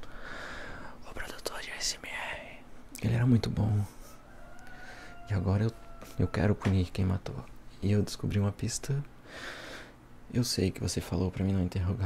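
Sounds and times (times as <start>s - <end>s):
man whispering: 0.8s - 4.0s.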